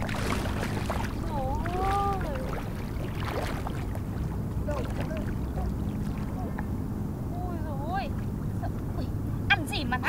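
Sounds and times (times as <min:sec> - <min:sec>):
faint steady hum: 0:00.0 - 0:10.0
wind rumble on microphone: 0:00.0 - 0:10.0.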